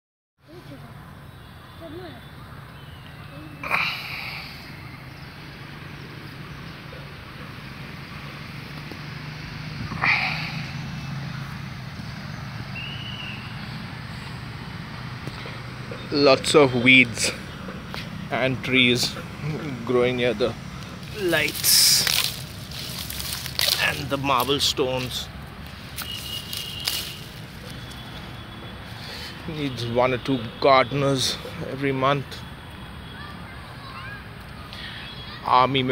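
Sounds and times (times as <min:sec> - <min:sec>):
distant traffic hum: 0:00.4 - 0:35.9
loud bird call: 0:09.9 - 0:11.5, 0:12.2 - 0:13.9.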